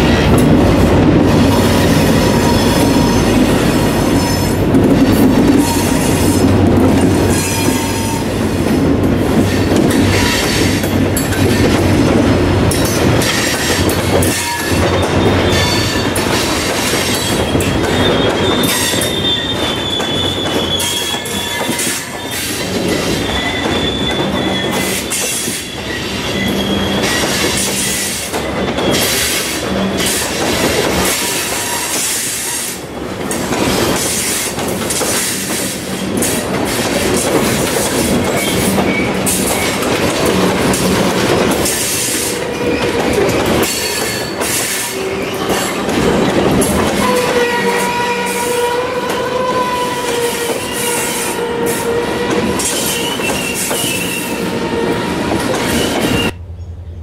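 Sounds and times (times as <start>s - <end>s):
train wheels clattering over rail joints: 0.0s - 56.4s
wheel flange squeal: 13.6s - 16.2s, 17.1s - 30.2s, 41.6s - 56.4s.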